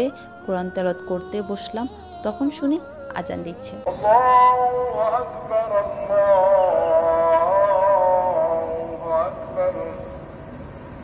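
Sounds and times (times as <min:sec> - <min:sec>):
person chanting recitation: 0:00.0 - 0:10.4.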